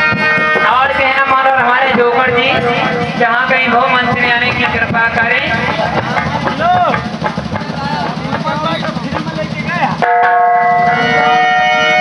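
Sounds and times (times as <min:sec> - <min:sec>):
fast drum roll: 0:00.0 - 0:11.6
held keyboard chord: 0:00.0 - 0:12.0.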